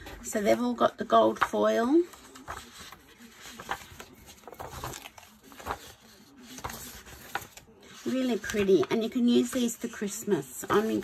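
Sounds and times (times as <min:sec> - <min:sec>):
paper rustling: 0:00.0 - 0:11.0.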